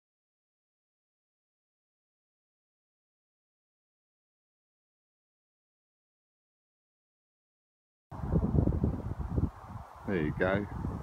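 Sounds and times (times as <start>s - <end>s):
wind and microphone handling rumble: 8.1s - 11.0s.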